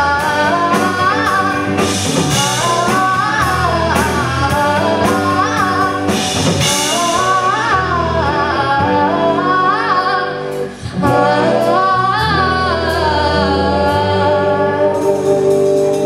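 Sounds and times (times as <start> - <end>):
drum kit: 0.0 - 16.0
electric bass: 0.0 - 16.0
live rock band: 0.0 - 16.0
woman singing: 0.0 - 16.0.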